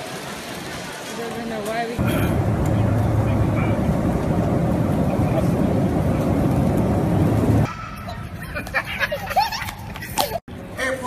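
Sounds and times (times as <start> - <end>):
vehicle rumble from inside cabin: 2.0 - 7.7.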